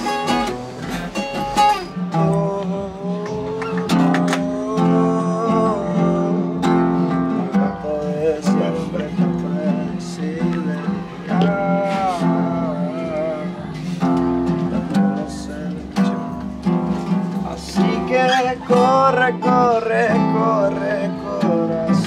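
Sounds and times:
acoustic guitar picking: 0:00.0 - 0:22.0.

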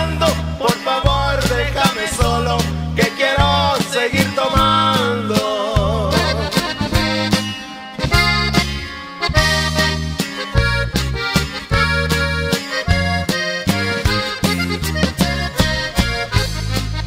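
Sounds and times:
accordion melody: 0:00.0 - 0:17.0
held bass notes: 0:00.0 - 0:17.0
steady percussion beat: 0:05.8 - 0:17.0.

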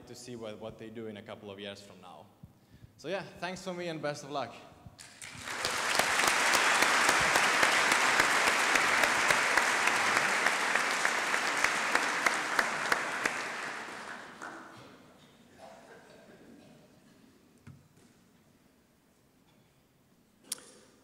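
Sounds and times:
audience applauding: 0:05.0 - 0:14.8.

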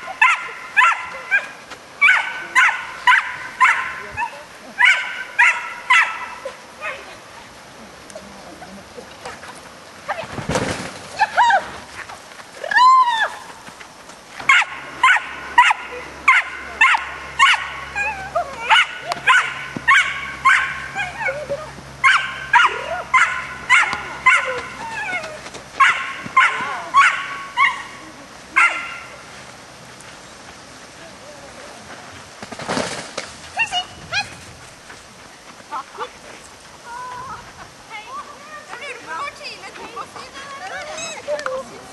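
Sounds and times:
dog barking: 0:00.2 - 0:07.0, 0:14.5 - 0:21.4, 0:22.0 - 0:24.8, 0:25.8 - 0:27.9, 0:28.6 - 0:29.2
dog yelp: 0:00.2 - 0:07.0, 0:14.5 - 0:27.9, 0:28.6 - 0:29.1.

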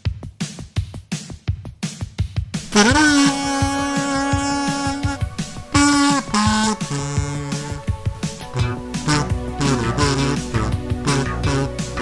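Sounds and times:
drum machine beat: 0:00.0 - 0:12.0
kazoo long note: 0:02.6 - 0:12.0.

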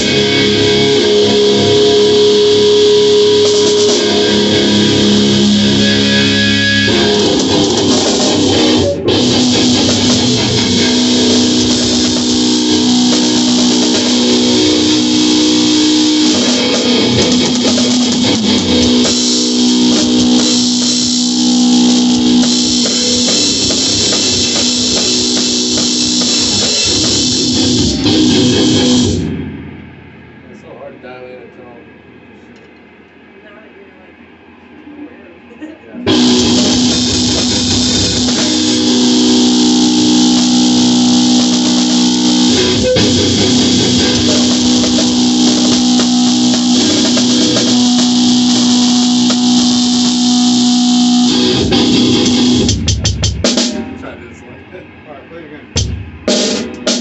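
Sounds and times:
drum kit snare hits: 0:00.0 - 0:30.4, 0:36.1 - 0:54.1, 0:55.8 - 0:57.0
cymbal wash: 0:00.0 - 0:30.5, 0:36.1 - 0:54.1
distorted electric guitar chord: 0:00.0 - 0:30.5, 0:36.0 - 0:54.5.

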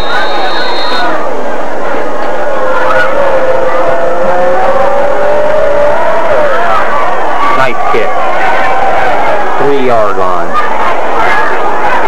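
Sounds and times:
stadium crowd yelling: 0:00.0 - 0:12.0.

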